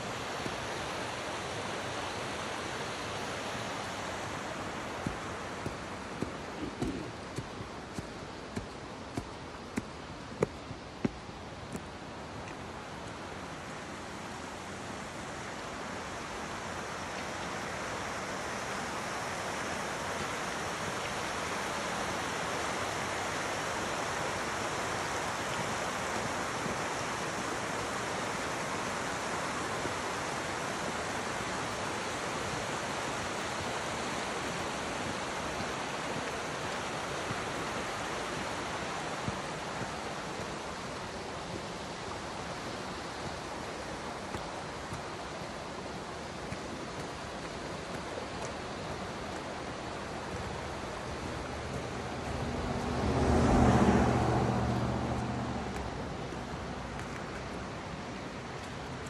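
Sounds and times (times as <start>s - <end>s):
creek rushing over rocks: 0.0s - 59.0s.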